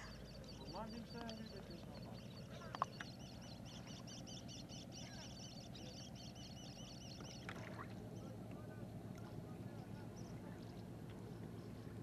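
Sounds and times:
bird chirping: 0.0 - 8.4
low outdoor rumble: 0.0 - 12.0.

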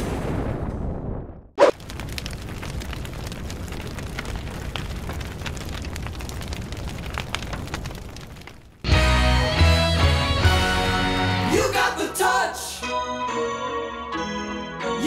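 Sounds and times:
low boom: 0.0 - 5.8
low rumble of burning: 0.0 - 9.2
faint fire crackles: 0.1 - 10.9.

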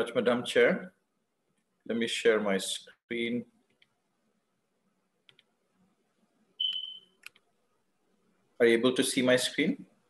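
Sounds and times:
computer mouse clicks: 5.2 - 5.5, 6.6 - 7.5.

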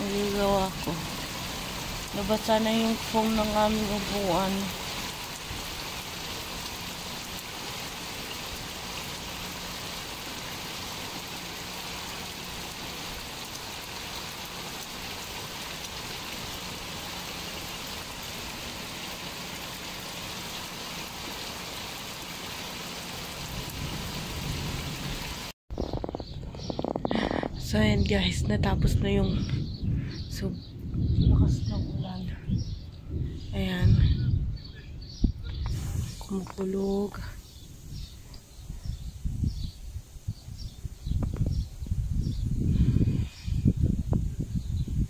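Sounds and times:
rain falling on pool: 0.0 - 25.6, 35.7 - 38.5.

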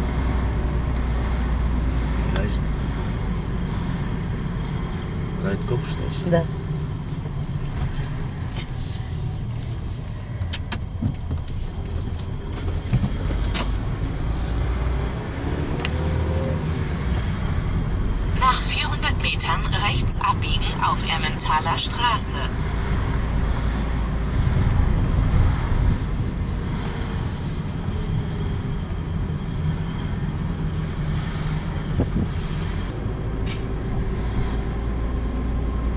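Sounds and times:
car engine and tyre rumble: 0.0 - 35.9.

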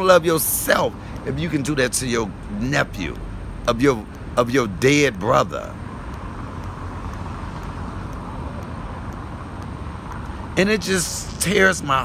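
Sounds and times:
rumble of passing cars: 0.0 - 12.0.

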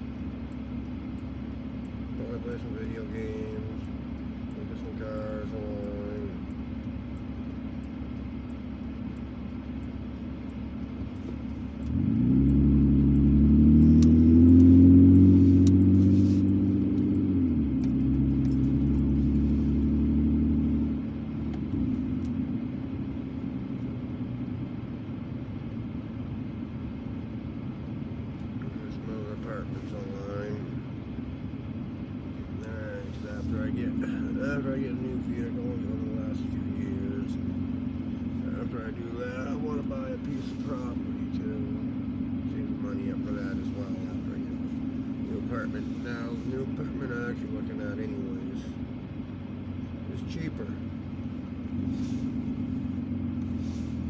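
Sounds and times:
car engine accelerating: 0.0 - 54.0.

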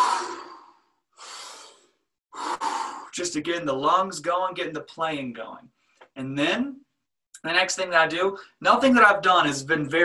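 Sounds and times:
person taking deep breaths: 0.0 - 3.1.

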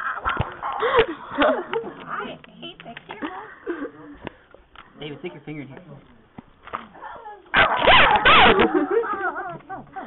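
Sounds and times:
dog yelping: 7.5 - 9.6.

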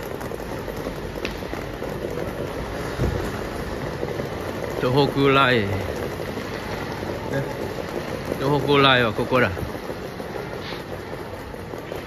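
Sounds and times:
station concourse hiss: 4.6 - 12.0.

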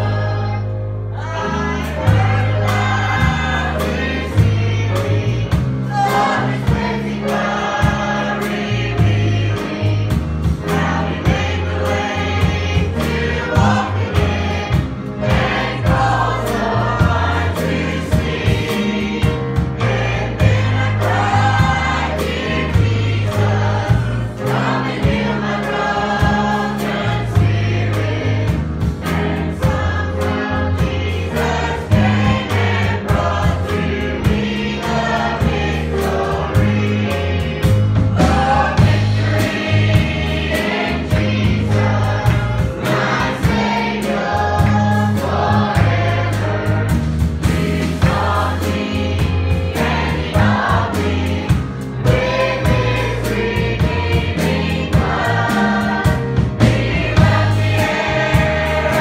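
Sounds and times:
drum kit beat: 0.0 - 59.0
electric bass line: 0.0 - 59.0
girls singing gospel song: 0.0 - 59.0.

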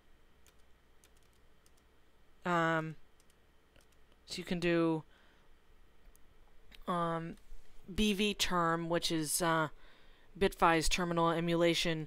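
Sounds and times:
keyboard keys clicking: 0.4 - 1.9, 3.2 - 4.1.

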